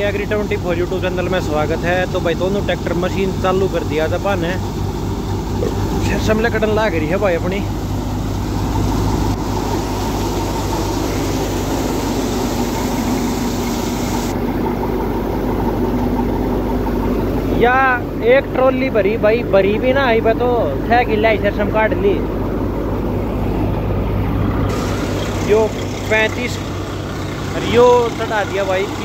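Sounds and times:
man speaking: 0.0 - 4.6, 5.6 - 7.8, 17.5 - 22.3, 25.4 - 26.6, 27.6 - 29.0
diesel tractor engine under load: 0.0 - 29.0
thresher machine drone: 0.0 - 29.0.

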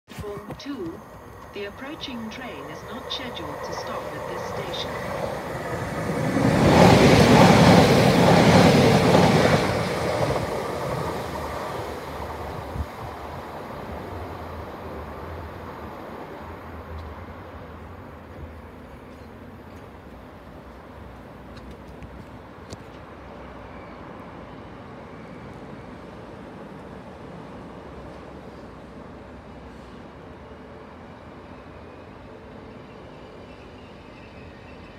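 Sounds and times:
passenger train passing at speed: 0.3 - 34.9.

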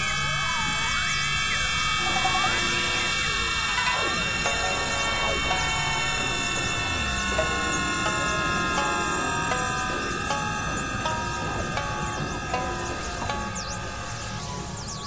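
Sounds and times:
layered electronic music: 2.0 - 15.0.

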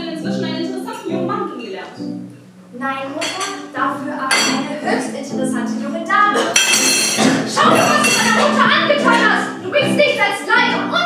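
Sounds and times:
voices: 0.0 - 2.0, 2.8 - 11.0
music: 0.0 - 11.0
cutlery clinking on plates: 3.2 - 3.6, 4.3 - 4.7, 6.4 - 8.6.

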